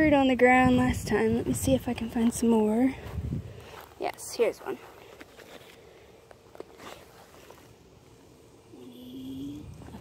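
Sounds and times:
faint steady hum: 0:00.0 - 0:10.0
rustling of dry pine straw: 0:03.0 - 0:08.3.

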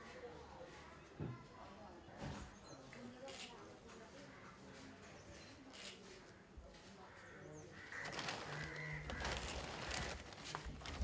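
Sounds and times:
faint bird chirp: 0:04.2 - 0:06.4.

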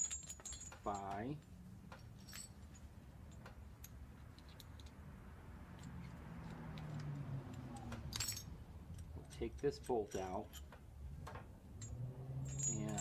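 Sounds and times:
metal clicks of climbing hardware: 0:00.0 - 0:05.0, 0:05.7 - 0:12.0
sharp metal clink: 0:11.8 - 0:13.0.

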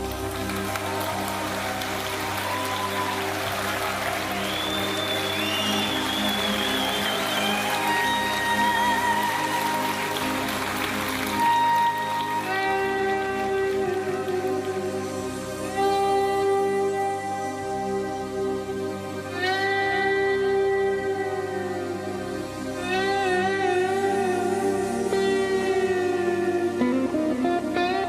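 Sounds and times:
lead guitar melody with bends: 0:01.8 - 0:28.0.

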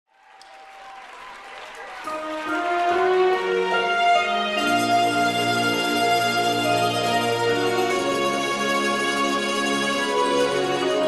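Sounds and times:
audience applauding: 0:00.1 - 0:08.0.

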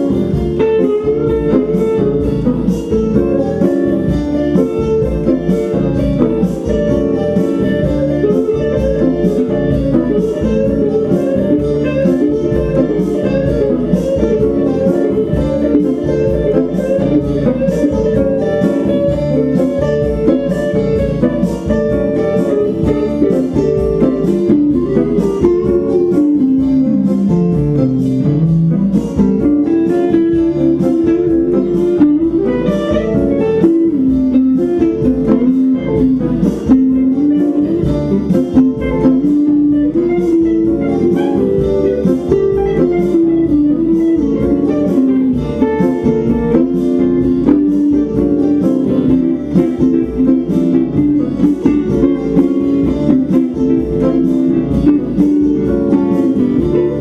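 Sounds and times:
lead guitar melody: 0:00.0 - 0:57.0
strummed acoustic guitar: 0:00.0 - 0:57.0.

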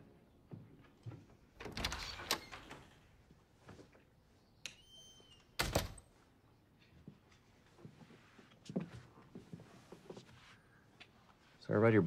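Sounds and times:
door squeaking: 0:01.6 - 0:03.1, 0:04.7 - 0:06.0.

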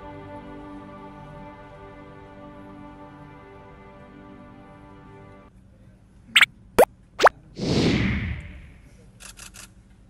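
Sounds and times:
whoosh: 0:07.2 - 0:08.9.

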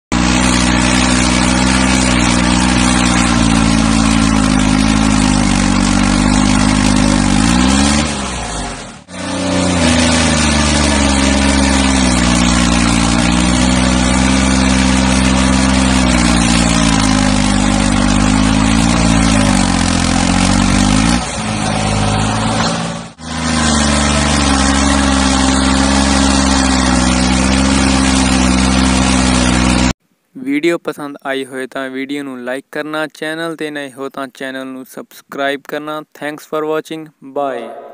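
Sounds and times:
tractor diesel engine running hard: 0:00.1 - 0:30.0.

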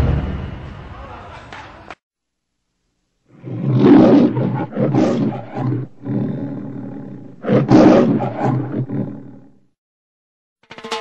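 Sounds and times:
big cat roaring: 0:03.3 - 0:09.8.

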